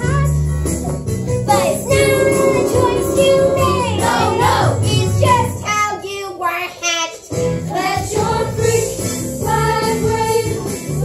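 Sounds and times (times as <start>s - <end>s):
instrumental accompaniment: 1.4s - 5.7s
young voices singing together: 1.5s - 6.3s.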